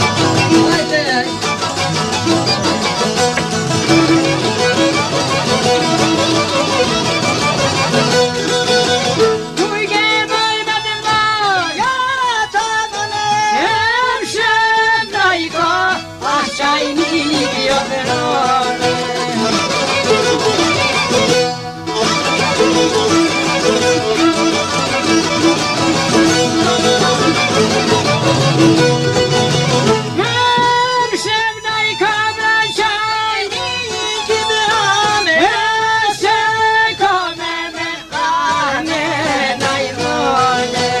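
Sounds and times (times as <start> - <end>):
folk music on string instruments: 0.0 - 41.0.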